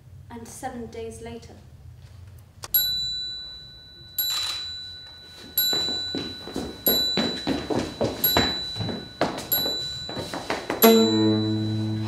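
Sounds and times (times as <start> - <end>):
bell-like metallic strikes: 2.8 - 12.0
soft knocks: 5.7 - 11.3
plucked sounds: 10.7 - 12.0.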